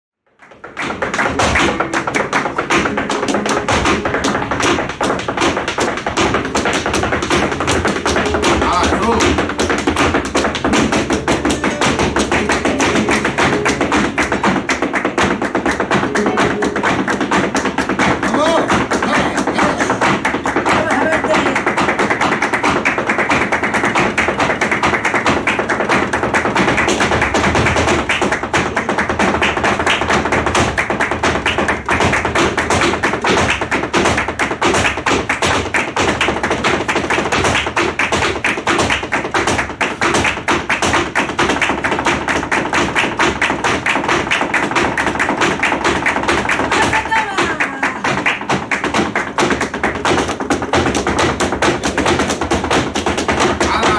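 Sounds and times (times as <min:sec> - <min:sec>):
hand clapping: 0:00.3 - 0:53.9
flamenco guitars strumming: 0:00.4 - 0:53.9
shoe tapping on wooden stage: 0:00.4 - 0:53.9
person singing: 0:11.0 - 0:14.2, 0:15.9 - 0:17.1.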